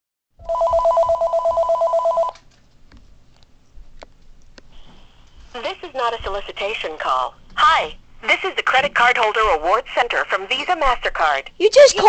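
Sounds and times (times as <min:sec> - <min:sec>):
telephone ringing electronic trill: 0:00.4 - 0:02.4.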